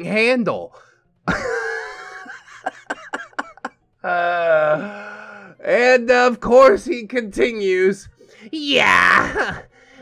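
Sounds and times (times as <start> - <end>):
man laughing hard: 1.3 - 4.9.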